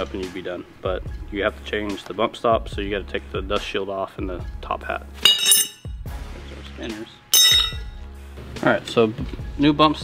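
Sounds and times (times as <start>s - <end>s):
background music: 0.0s - 10.0s
metallic clink with ringing tail: 5.3s - 6.0s, 7.4s - 8.0s.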